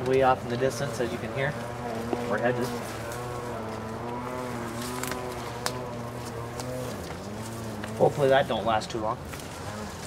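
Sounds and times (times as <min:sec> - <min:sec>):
distant small gas engine running: 0:00.0 - 0:10.0.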